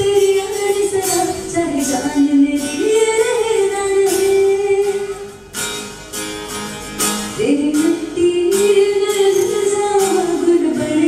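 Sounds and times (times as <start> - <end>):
girl singing into a microphone: 0.0 - 5.5, 7.3 - 11.0
acoustic guitar: 0.0 - 11.0.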